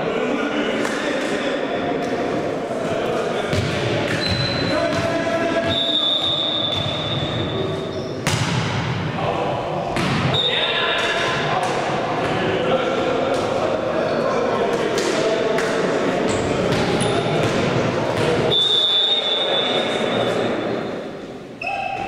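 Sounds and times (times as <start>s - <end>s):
volleyball smacks echoing: 8.2s - 9.0s, 9.9s - 12.4s.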